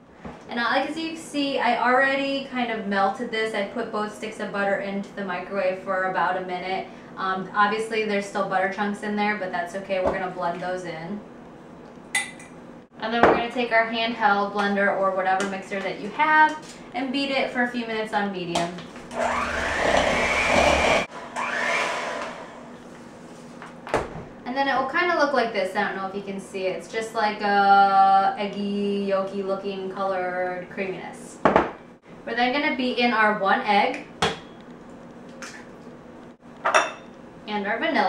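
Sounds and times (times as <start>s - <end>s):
electric mixer beating: 19.1s - 22.8s
dishware clinking: 36.7s - 37.1s.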